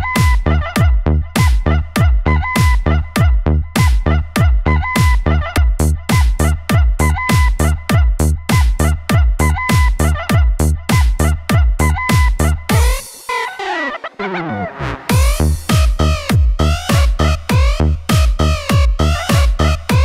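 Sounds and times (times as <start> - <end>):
heavy kick drum beat: 0.0 - 13.1, 15.1 - 20.0
electronic dance music: 0.0 - 20.0.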